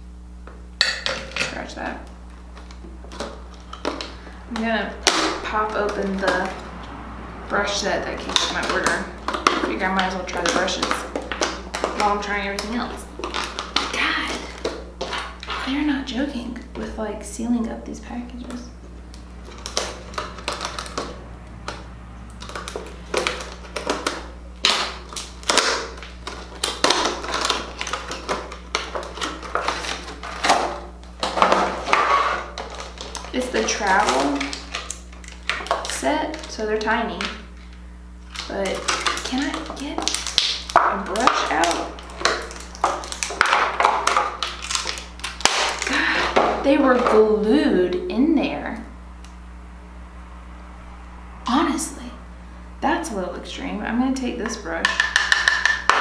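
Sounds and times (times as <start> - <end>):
packaging crackling and snapping: 1.8 - 15.7, 18.5 - 47.3.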